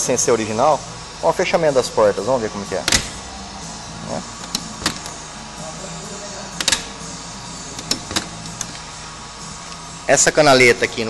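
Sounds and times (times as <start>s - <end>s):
steady low hum: 0.0s - 11.0s
car door latch clicking: 2.8s - 3.2s, 4.4s - 5.2s, 6.6s - 7.0s, 7.8s - 8.8s.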